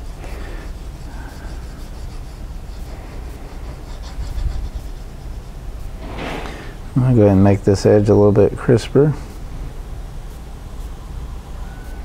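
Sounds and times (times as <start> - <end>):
pencil scratching on paper: 0.0 - 6.6
low room hum: 0.0 - 12.0.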